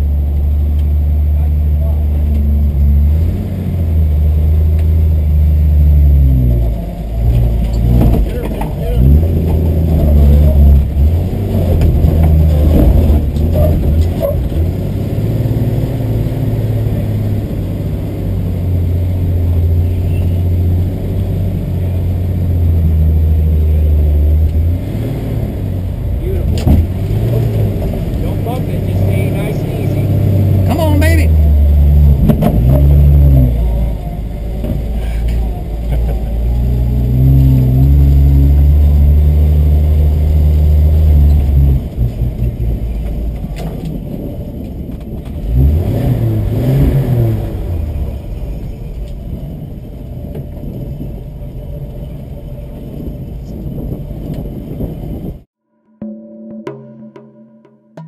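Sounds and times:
car engine revving under load: 0:00.0 - 0:55.5.

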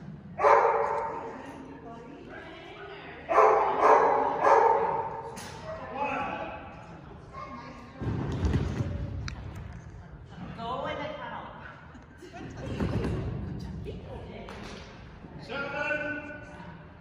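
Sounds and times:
dog barking: 0:00.4 - 0:01.1, 0:03.3 - 0:05.1.

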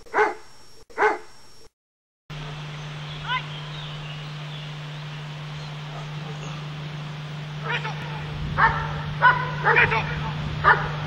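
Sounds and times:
dog barking: 0:00.0 - 0:01.3, 0:05.9 - 0:06.6, 0:07.6 - 0:11.0.

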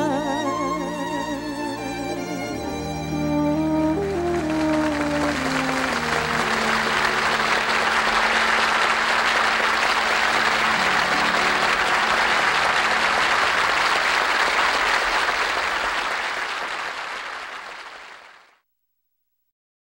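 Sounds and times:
held low musical notes: 0:00.0 - 0:14.2
audience applauding: 0:02.9 - 0:18.6.

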